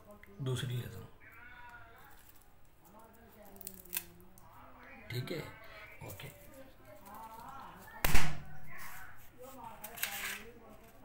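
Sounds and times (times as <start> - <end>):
faint voices talking: 0.0 - 11.0
sharp loud bang: 8.0 - 8.5.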